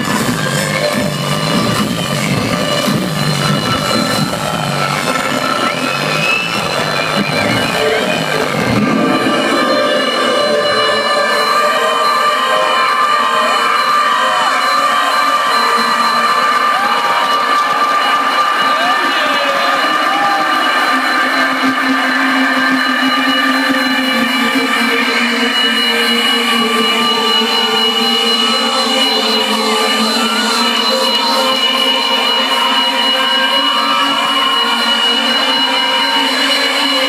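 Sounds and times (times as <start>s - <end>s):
crowd cheering and screaming: 0.0s - 37.0s
electronic dance music synth chord: 0.0s - 37.0s.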